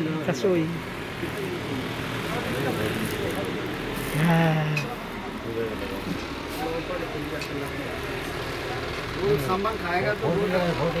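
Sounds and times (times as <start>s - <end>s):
low ambient hum: 0.0s - 11.0s
indistinct background voices: 0.3s - 11.0s.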